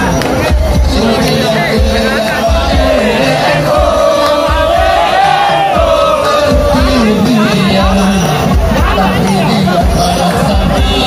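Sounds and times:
crowd of men shouting and cheering: 0.0s - 11.0s
low repeating drumbeat: 0.0s - 11.0s.

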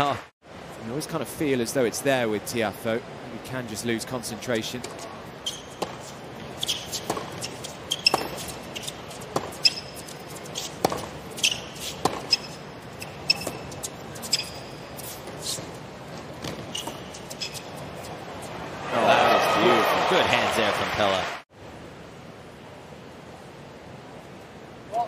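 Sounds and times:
shoes squeaking on court: 4.8s - 18.6s
racket striking tennis ball: 5.7s - 18.2s.

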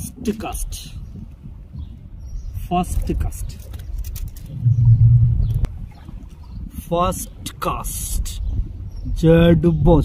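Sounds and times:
low rumble: 4.2s - 6.7s.

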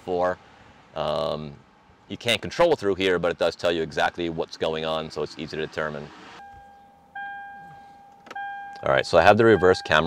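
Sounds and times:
electronic reverse warning chime: 6.3s - 10.0s.

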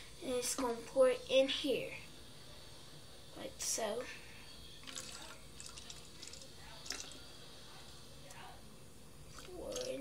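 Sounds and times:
liquid trickling into bottle: 4.8s - 7.2s
small drips and splashes: 4.8s - 7.2s, 9.3s - 10.0s.

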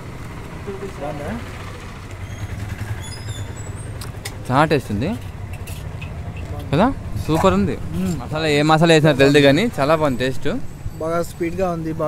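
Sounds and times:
engines idling: 0.0s - 12.0s
street traffic rumble: 0.0s - 12.0s.

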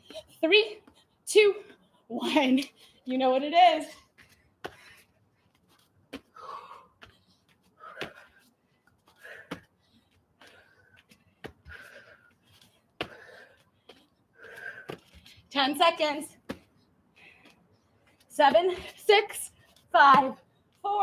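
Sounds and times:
woman panting: 3.8s - 15.5s.

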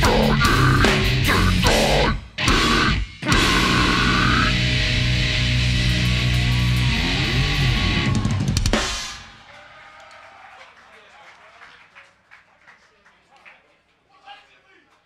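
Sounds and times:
heavy rock band playing: 0.0s - 9.4s.

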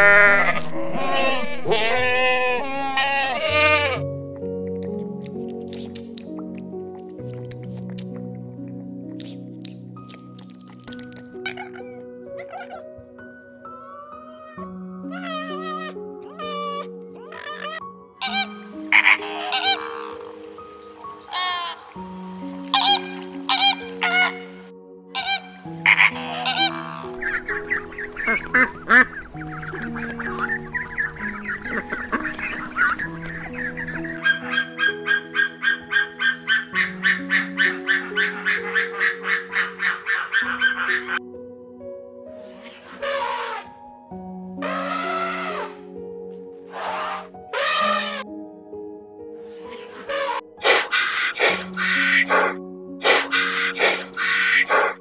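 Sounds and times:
flamingos honking and chattering: 0.0s - 1.9s, 15.2s - 24.6s, 25.2s - 34.2s, 42.8s - 43.7s, 44.6s - 45.8s, 46.7s - 48.2s, 50.0s - 55.0s
slow sustained background music: 0.0s - 55.0s
bird calls: 15.1s - 24.6s, 25.2s - 34.2s, 50.1s - 55.0s
fast repeated animal calls: 17.4s - 20.3s, 25.2s - 34.2s, 43.0s - 43.7s, 46.7s - 48.2s, 50.1s - 55.0s.

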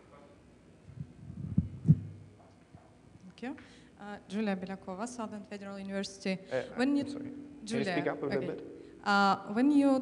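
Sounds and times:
dull low thumps: 1.0s - 2.3s.

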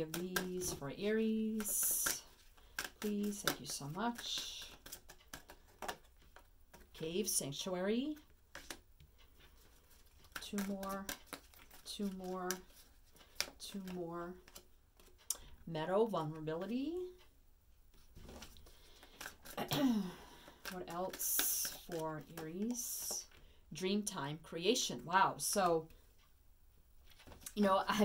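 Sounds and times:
cards ticking and rustling: 0.0s - 15.6s, 17.9s - 23.5s, 27.0s - 28.0s.

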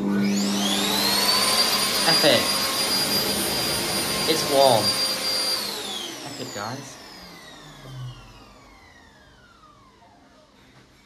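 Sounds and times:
hand dryer motor winding down: 0.0s - 10.6s.

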